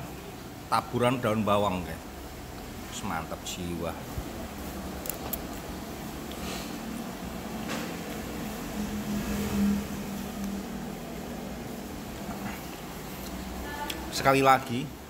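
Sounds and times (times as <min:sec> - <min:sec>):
low background hum: 0:00.0 - 0:15.0
low tone: 0:08.0 - 0:12.3.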